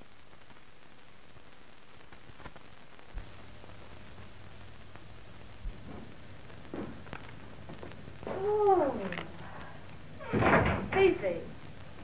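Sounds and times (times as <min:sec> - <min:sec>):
breathy outburst: 0:08.3 - 0:10.0.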